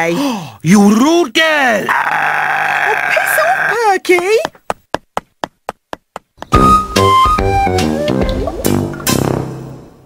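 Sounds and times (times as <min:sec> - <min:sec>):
synthesizer and bass music: 0:06.6 - 0:09.4.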